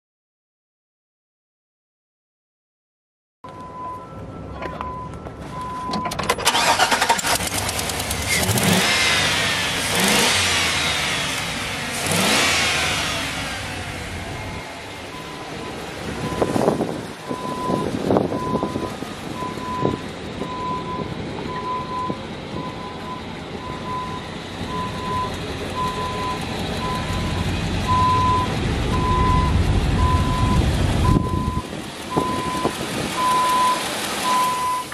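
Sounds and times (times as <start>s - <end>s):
backup alarm beeping: 3.5s - 6.2s, 15.1s - 34.9s
pickup engine revving: 6.4s - 21.6s, 23.5s - 34.9s.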